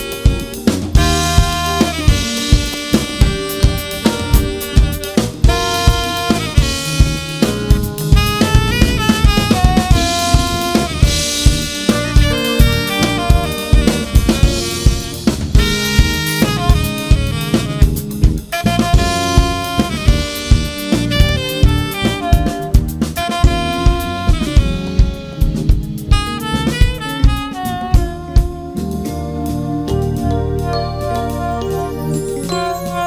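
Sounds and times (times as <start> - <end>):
drum hits: 0.0 - 29.0
live jazz band: 0.0 - 33.0
saxophone melody: 0.0 - 33.0.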